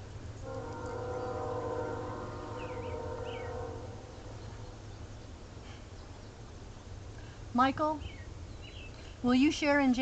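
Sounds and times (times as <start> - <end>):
faint birds chirping: 0.0 - 10.0
steady held chord: 0.4 - 5.1.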